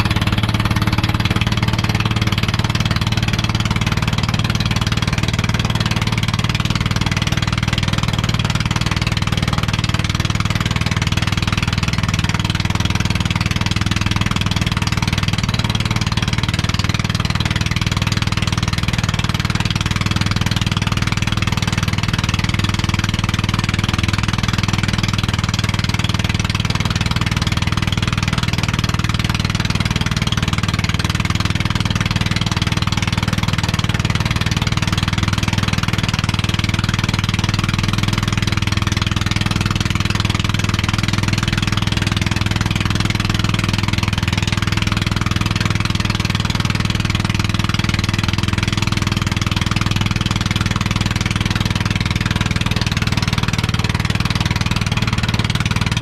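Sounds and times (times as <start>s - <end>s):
boat engine running: 0.0s - 56.0s
wind: 0.0s - 56.0s.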